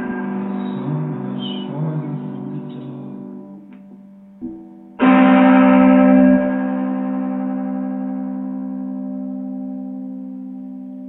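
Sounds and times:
musical chord ringing: 0.0 - 11.0.

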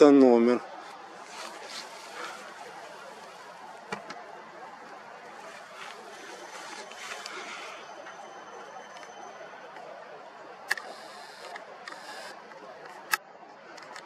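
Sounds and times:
steady hiss: 10.7 - 12.4.

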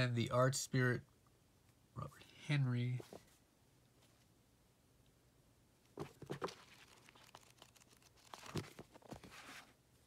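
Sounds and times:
books rustling and tapping: 6.0 - 9.8.

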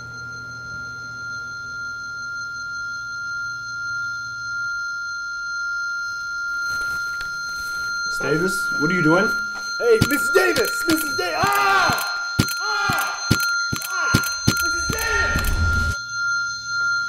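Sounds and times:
high-pitched ringing tone: 0.0 - 17.0
low drone: 13.2 - 16.1.

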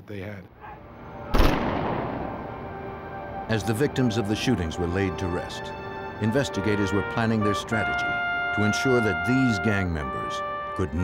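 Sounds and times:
rifle volley crack: 1.3 - 2.6.

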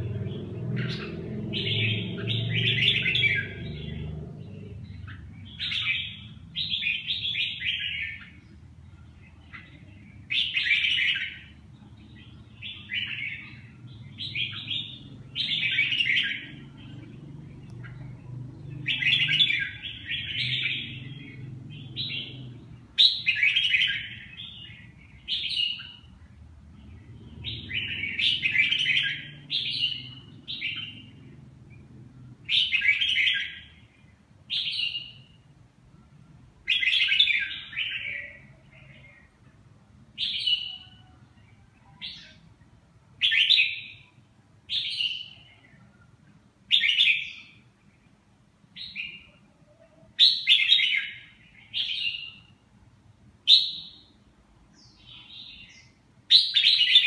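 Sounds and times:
bird singing warbled phrases: 0.0 - 57.0.

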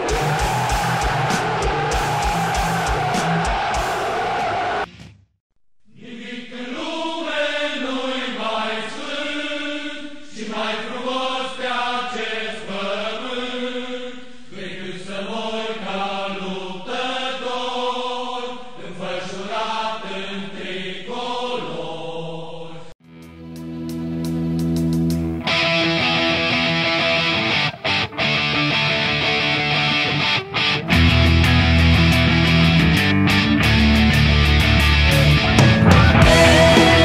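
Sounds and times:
choir chanting slow melody: 0.0 - 4.9, 5.9 - 23.0, 36.1 - 37.0
loud roar of noise: 0.0 - 4.9, 33.7 - 37.0.

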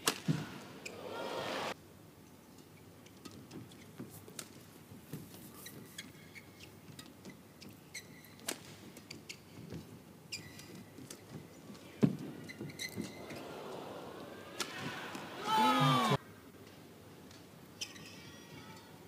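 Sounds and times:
shoes squeaking on court: 3.2 - 13.5.

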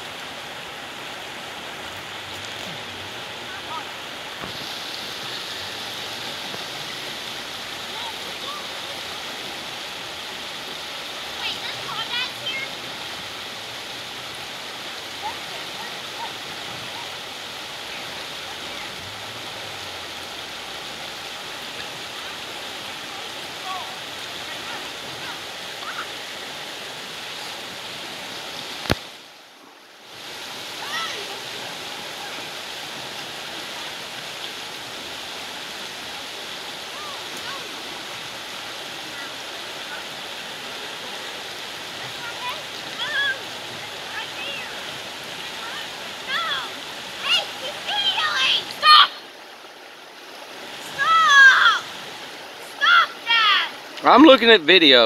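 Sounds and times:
river rapids rushing over rocks: 0.0 - 55.0.

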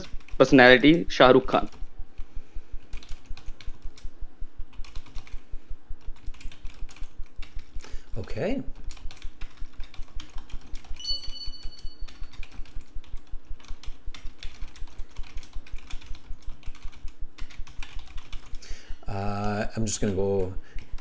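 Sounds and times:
computer keyboard typing: 0.0 - 21.0
brief high tone: 11.0 - 12.1.

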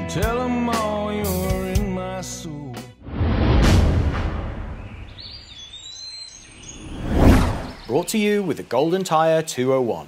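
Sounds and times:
low rumble: 3.0 - 5.3.

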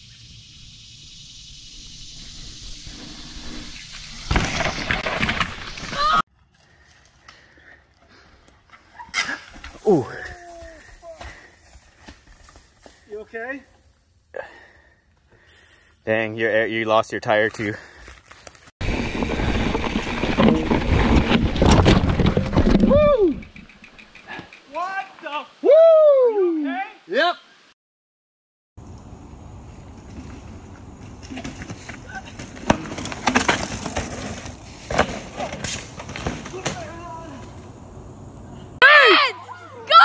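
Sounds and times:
bike rattling over wooden slats: 4.2 - 6.2, 18.8 - 23.8, 30.0 - 37.1.

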